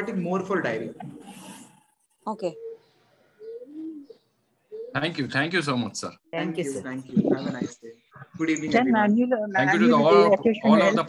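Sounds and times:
pigeon cooing: 2.4 - 5.2.

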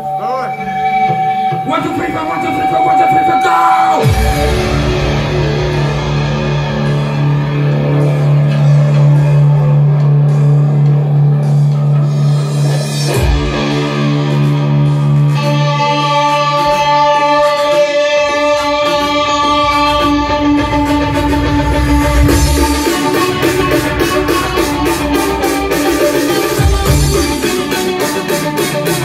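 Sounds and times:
electric guitar through amplifier: 0.0 - 29.0.

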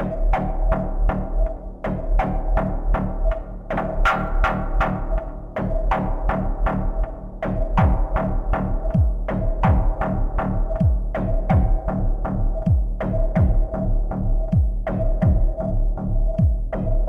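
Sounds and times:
deep bass: 0.0 - 17.0
techno kick drum: 0.0 - 17.0.

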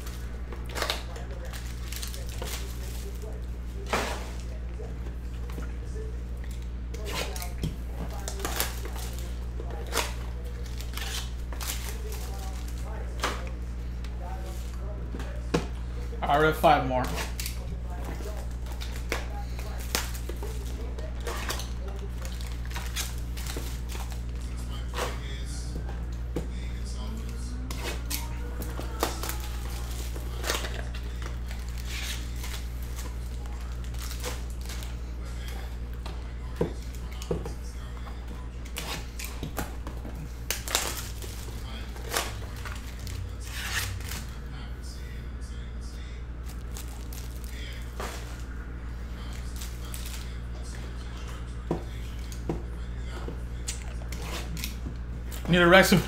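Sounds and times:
cellophane wrapper crinkling: 0.0 - 3.4, 28.0 - 35.0, 40.3 - 44.4, 46.4 - 48.5, 49.2 - 50.4
steady low hum: 0.0 - 56.0.

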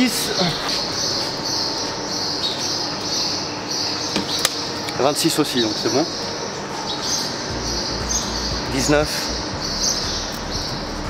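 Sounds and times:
high-pitched buzz: 0.0 - 11.0.

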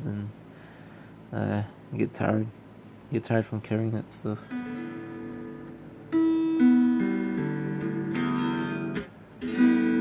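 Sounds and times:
electric guitar strings plucked: 4.5 - 10.0.

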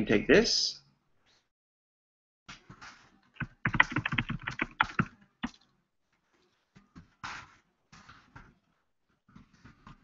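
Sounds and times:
computer keyboard typing: 3.4 - 5.6.

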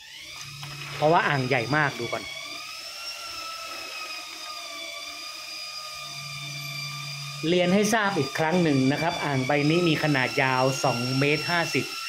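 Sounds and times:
small electric motor whining: 0.0 - 12.0.

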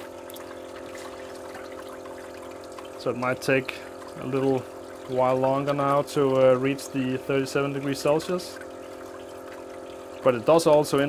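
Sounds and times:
circulator motor hum: 0.0 - 11.0
pump churning and splashing water: 0.0 - 11.0.

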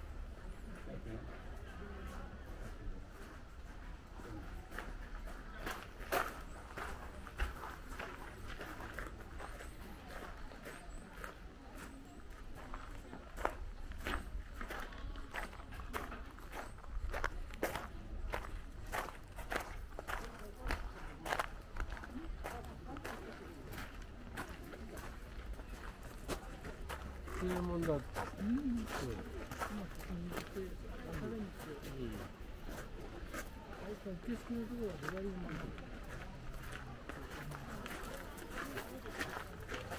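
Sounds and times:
footsteps on outdoor path: 2.0 - 39.9.

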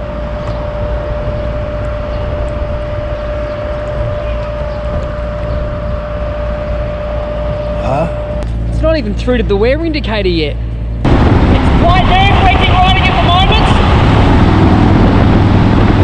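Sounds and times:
constant humming tone: 0.0 - 16.0
low engine rumble: 0.0 - 16.0.

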